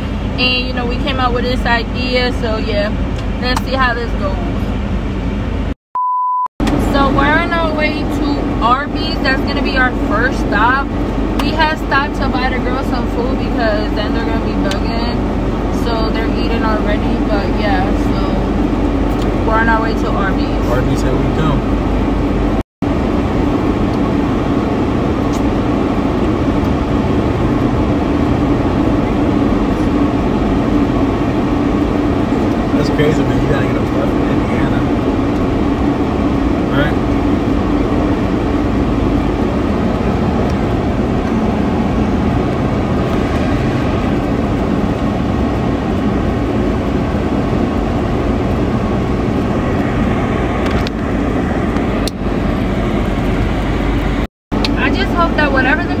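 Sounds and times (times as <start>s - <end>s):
car road and engine noise: 0.0s - 5.8s, 6.6s - 56.0s.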